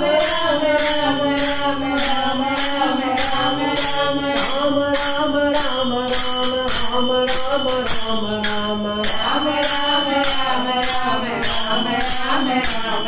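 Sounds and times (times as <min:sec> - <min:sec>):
group singing a devotional chant: 0:00.0 - 0:13.0
metal hand cymbals: 0:00.0 - 0:13.0.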